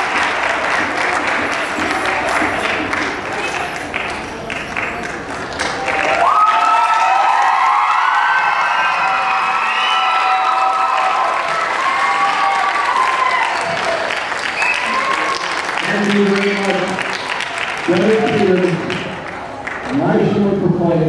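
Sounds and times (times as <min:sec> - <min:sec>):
audience clapping: 0:00.0 - 0:20.2
high voices cheering: 0:05.8 - 0:19.7.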